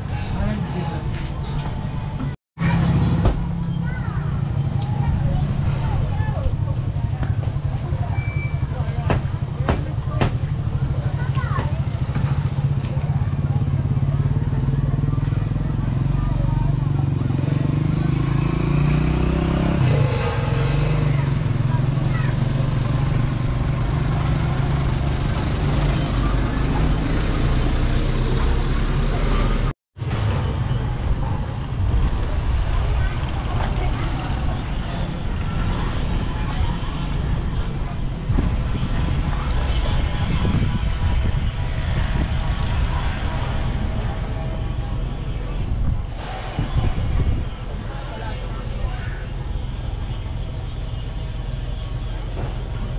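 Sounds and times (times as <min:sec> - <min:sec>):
motor vehicle engine running: 0:00.0 - 0:52.9.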